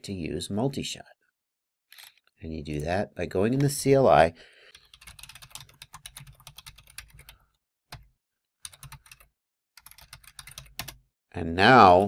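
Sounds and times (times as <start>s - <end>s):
computer keyboard typing: 4.7s - 11.0s.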